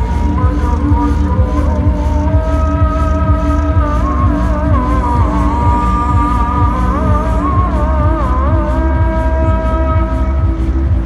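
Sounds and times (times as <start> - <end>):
person singing call to prayer: 0.0 - 10.6
low rumble: 0.0 - 11.0.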